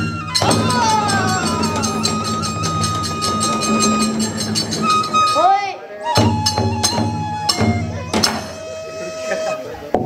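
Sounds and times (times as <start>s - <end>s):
drum strikes: 0.0s - 5.4s, 6.1s - 8.6s
hand cymbals: 0.0s - 9.1s
bamboo flute high note: 0.0s - 9.8s.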